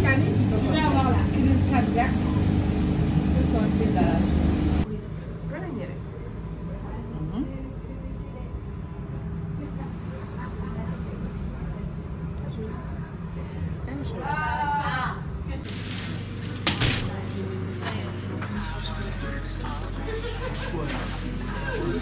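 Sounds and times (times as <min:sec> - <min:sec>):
steady low hum: 0:00.0 - 0:14.2.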